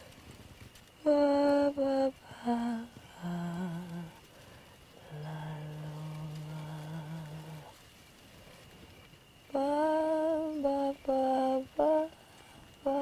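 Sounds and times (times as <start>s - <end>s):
low voice humming: 1.0s - 4.3s, 5.0s - 7.8s.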